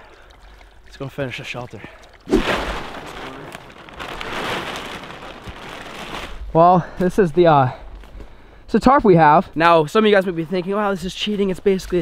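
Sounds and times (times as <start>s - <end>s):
plastic tarp crinkling: 2.3s - 6.6s.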